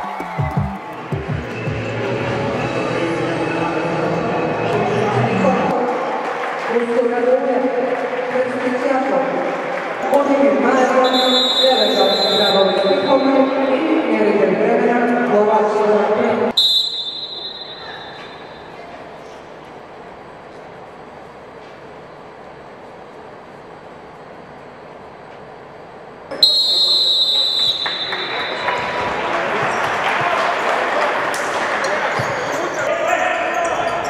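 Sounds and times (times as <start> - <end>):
referee's whistle blast: 11.0 - 13.7, 16.6 - 18.6, 26.3 - 28.7.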